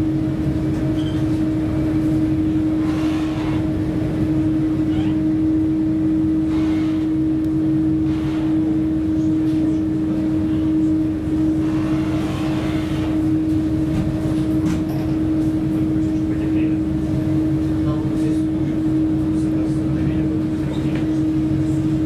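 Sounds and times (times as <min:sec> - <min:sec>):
ferry engines droning: 0:00.0 - 0:22.0.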